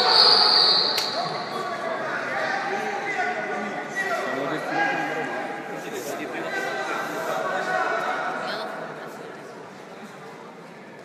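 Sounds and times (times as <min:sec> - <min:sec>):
voices talking in echoing hall: 0:00.0 - 0:11.0.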